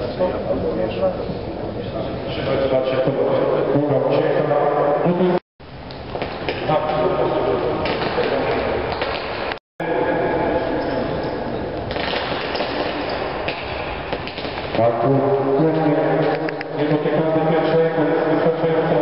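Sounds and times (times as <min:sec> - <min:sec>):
voices echoing in a hall: 0:00.0 - 0:05.4, 0:06.2 - 0:19.0.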